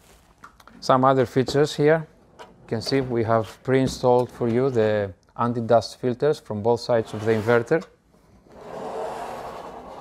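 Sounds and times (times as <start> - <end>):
case scraping across tabletop: 8.5 - 10.0.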